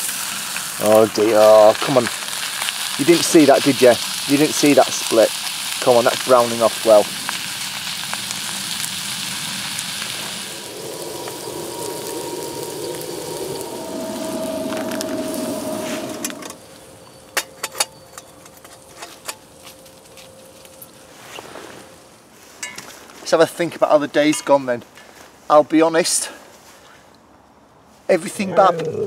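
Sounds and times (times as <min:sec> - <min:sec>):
stove flames rushing: 0:00.0 - 0:16.6
omelette sizzling in skillet: 0:00.0 - 0:16.8
burning wood crackles: 0:00.0 - 0:26.9.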